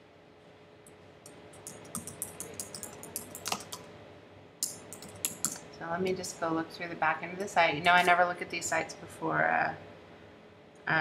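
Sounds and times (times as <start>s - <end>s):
computer keyboard typing: 1.5s - 3.8s, 4.6s - 5.6s.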